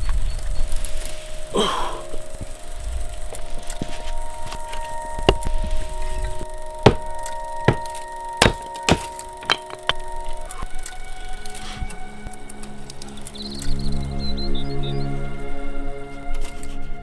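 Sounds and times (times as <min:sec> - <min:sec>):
sustained music chords: 0:00.5 - 0:17.0
axe striking firewood: 0:06.8 - 0:10.0.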